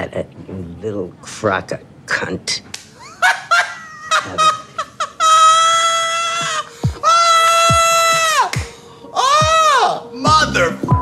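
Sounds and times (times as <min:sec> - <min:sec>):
person shrieking: 0:05.4 - 0:10.2.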